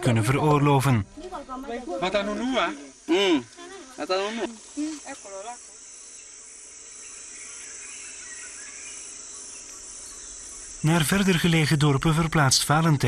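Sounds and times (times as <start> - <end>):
insects chorus: 0.0 - 13.0.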